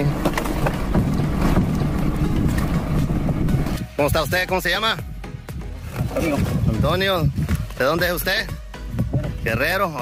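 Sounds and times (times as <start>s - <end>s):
engine idling: 0.0s - 5.8s.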